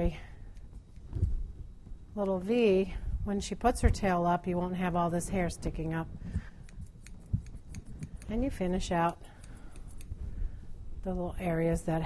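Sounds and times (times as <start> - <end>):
scissors snipping hair: 6.6 - 10.2.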